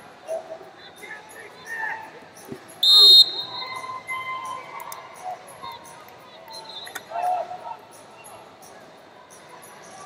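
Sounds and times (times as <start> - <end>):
referee's whistle: 2.8 - 4.2, 6.5 - 7.1.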